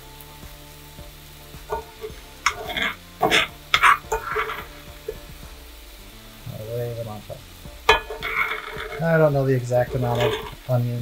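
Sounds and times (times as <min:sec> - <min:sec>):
shallots sizzling in a skillet: 0:00.0 - 0:11.0
utensil scraping a pan: 0:01.6 - 0:11.0.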